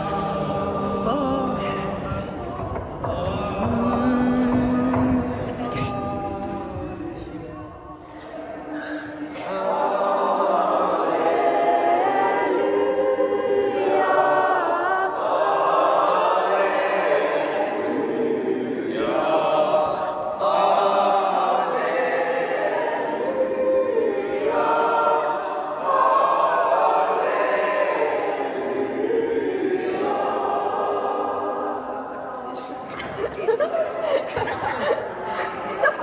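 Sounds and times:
choir singing chant: 0.0s - 36.0s.

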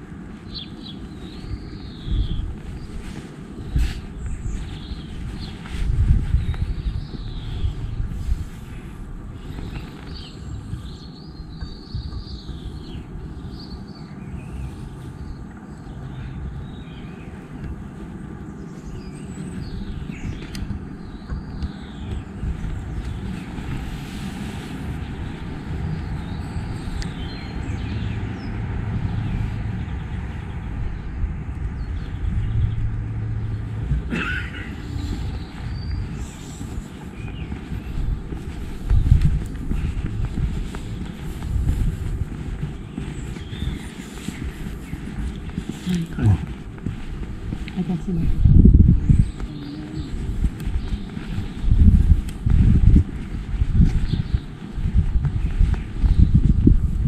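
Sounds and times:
small birds chirping: 0.0s - 57.0s
steady low rumble: 0.0s - 57.0s.

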